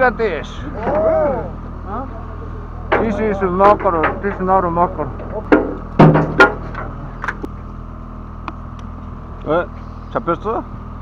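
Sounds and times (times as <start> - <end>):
boat engine hum: 0.0 - 11.0.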